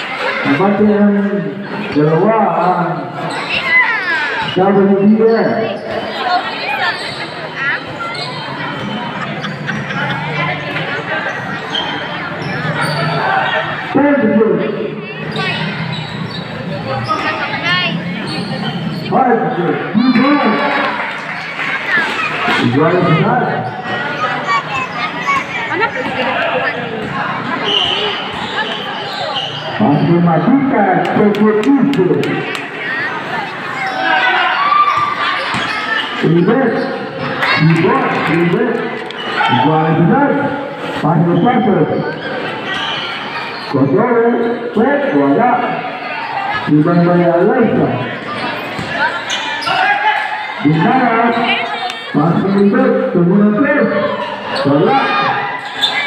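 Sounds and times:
spectators talking and calling out: 0.0 - 56.0
basketball bouncing on court: 35.0 - 35.8.

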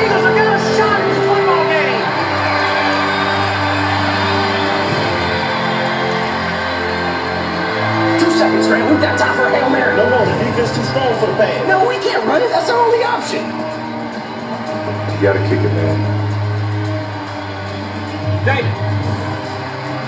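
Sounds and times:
crowd shouting: 0.0 - 20.0
film music over speakers: 0.0 - 20.0.

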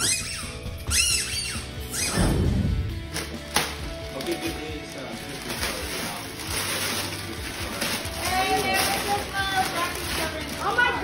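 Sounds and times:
squeaky dog toy: 0.0 - 2.3.

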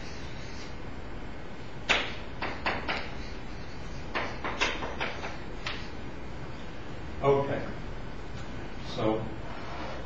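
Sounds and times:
chalk writing on blackboard: 0.0 - 0.8, 2.4 - 6.0
room hum: 0.0 - 10.0.

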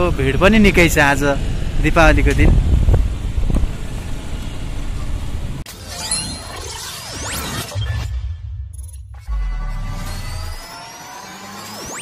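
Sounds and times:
motorbike engine and road rumble: 0.0 - 5.6
city traffic: 0.0 - 5.7.

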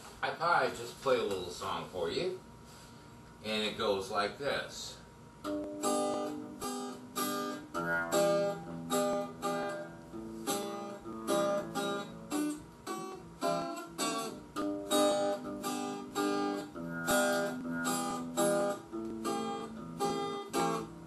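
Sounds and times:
acoustic guitar strumming: 5.4 - 21.0.

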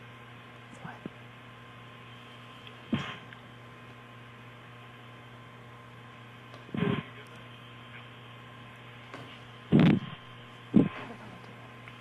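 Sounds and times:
audio feed hum and hiss: 0.0 - 12.0.

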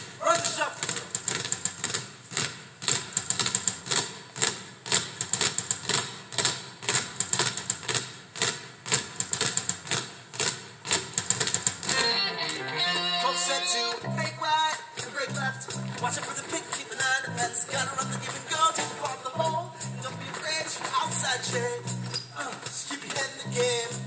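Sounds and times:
basketballs bouncing on stage: 0.0 - 24.0
pitched music: 11.9 - 24.0.

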